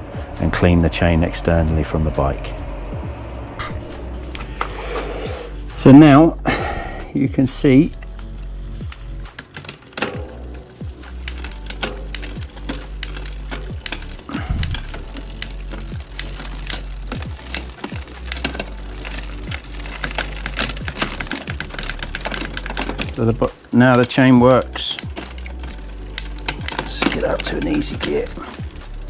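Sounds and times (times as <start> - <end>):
bicycle chain clicking: 4.5 - 29.0.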